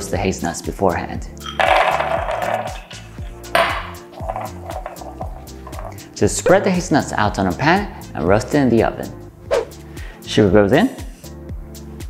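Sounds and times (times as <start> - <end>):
nuts rattling onto baking tray: 1.5 - 6.0.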